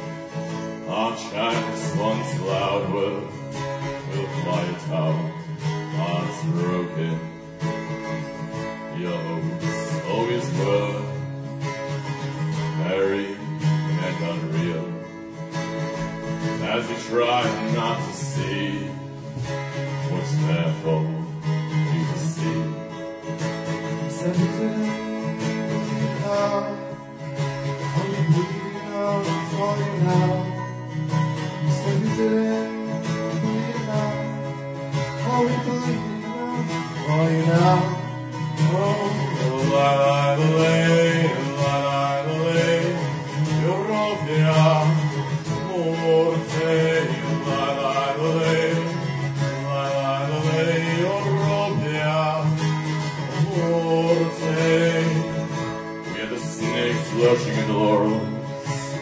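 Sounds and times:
acoustic guitar strumming: 0:00.0 - 0:59.0
man singing: 0:00.0 - 0:59.0.

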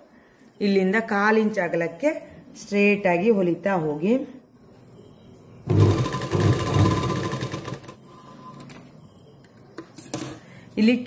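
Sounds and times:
sewing machine stitching: 0:05.7 - 0:08.0.

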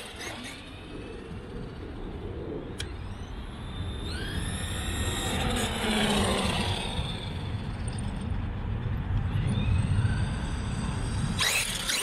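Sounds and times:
electric motor whine: 0:00.0 - 0:01.5, 0:02.7 - 0:08.0, 0:09.4 - 0:12.0
steady low rumble: 0:00.6 - 0:11.4.

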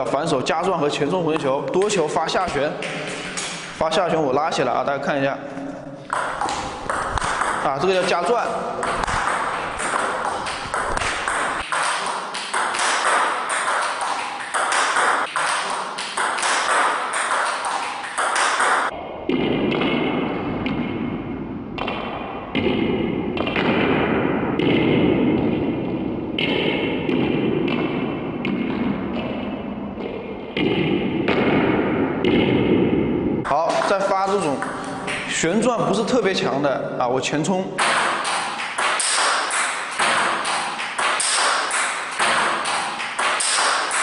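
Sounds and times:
table tennis ball hits: 0:01.4 - 0:03.8, 0:06.0 - 0:21.2, 0:21.8 - 0:35.4, 0:37.8 - 0:44.0.

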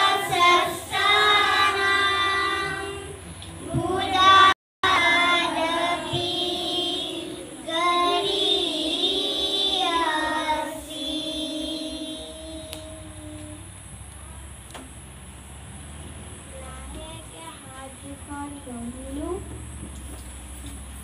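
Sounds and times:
children singing in unison: 0:00.0 - 0:13.6.

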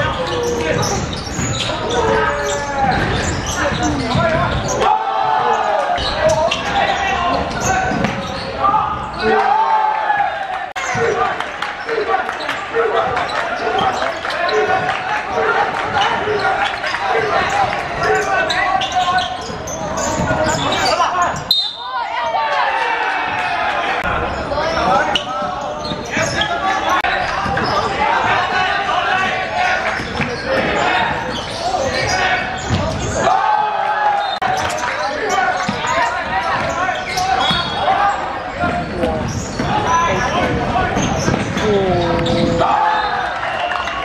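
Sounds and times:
people calling out in hall: 0:00.0 - 0:44.0.

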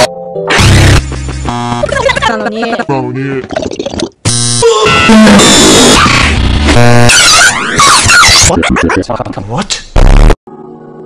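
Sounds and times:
chaotic music: 0:00.0 - 0:02.9
buzzing tone: 0:00.6 - 0:02.2, 0:04.2 - 0:07.3
cartoon sound effects: 0:04.6 - 0:09.2.

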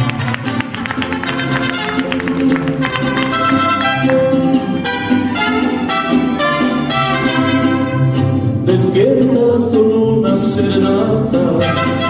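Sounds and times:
mariachi band instrumental: 0:00.0 - 0:12.0.

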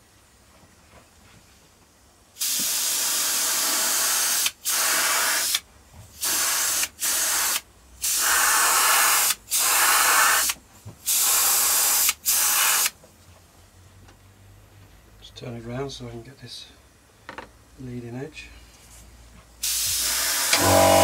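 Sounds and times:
spray paint hissing: 0:02.4 - 0:05.6, 0:06.2 - 0:13.0, 0:19.6 - 0:21.0.

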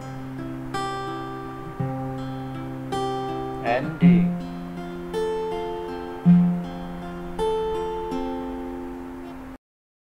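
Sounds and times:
acoustic guitar fingerpicking: 0:00.0 - 0:09.5.

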